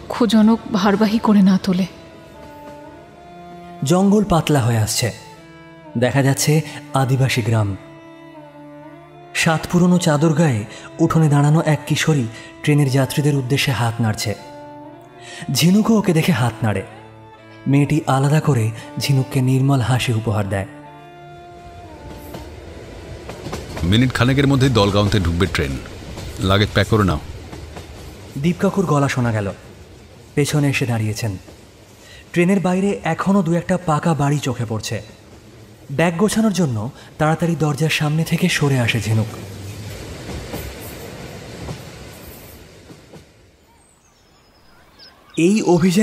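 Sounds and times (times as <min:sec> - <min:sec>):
held music chord: 0:00.0 - 0:27.4
train wheels rumbling on rails: 0:22.0 - 0:32.0, 0:38.2 - 0:43.6
train wheels clacking on rails: 0:23.2 - 0:28.4.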